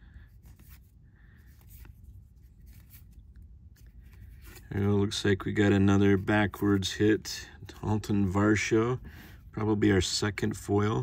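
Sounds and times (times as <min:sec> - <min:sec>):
low steady hum: 0:00.0 - 0:11.0
cards being flipped by hand: 0:00.3 - 0:04.9.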